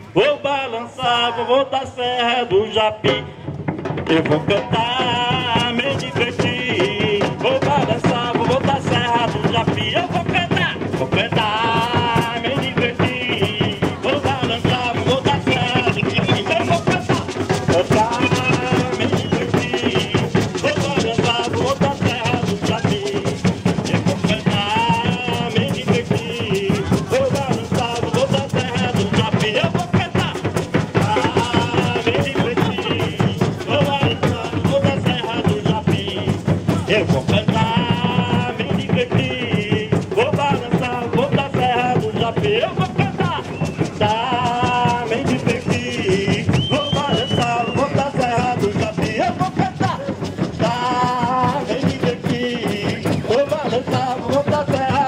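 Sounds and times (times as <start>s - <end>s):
voices singing a refrain: 0.0s - 3.3s, 4.1s - 55.0s
bass and snare drums: 2.0s - 55.0s.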